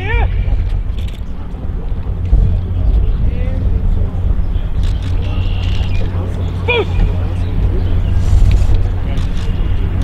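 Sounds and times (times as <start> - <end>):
faint distant voices: 0.0 - 10.0
wind buffeting microphone: 0.0 - 10.0.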